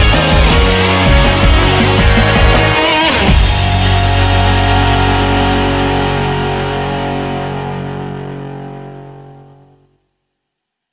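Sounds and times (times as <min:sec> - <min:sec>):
distorted electric guitar chord: 0:00.0 - 0:10.2.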